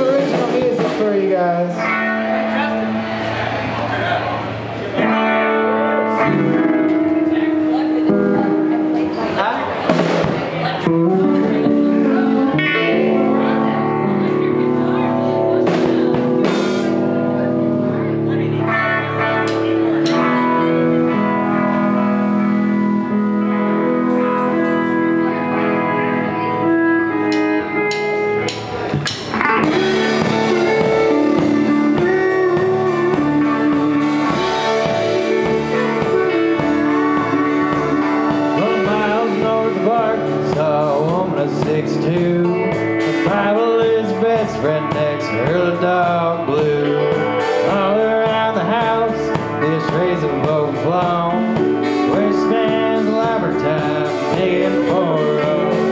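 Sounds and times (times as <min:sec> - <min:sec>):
live band playing: 0:00.0 - 0:55.9.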